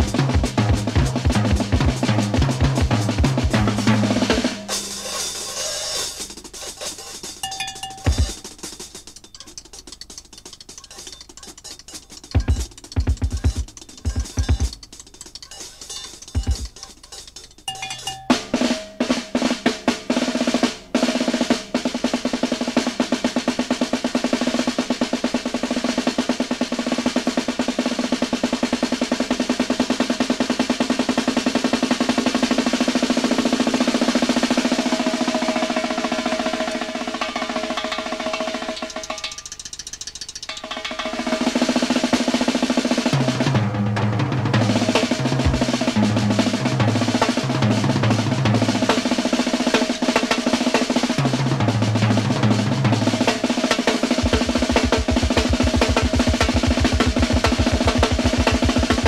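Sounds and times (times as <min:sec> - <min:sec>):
rolling snare drum pattern: 0:00.0 - 0:59.0.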